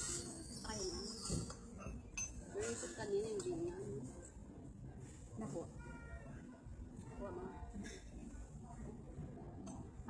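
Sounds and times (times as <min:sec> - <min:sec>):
restaurant table noise: 0:00.0 - 0:10.0.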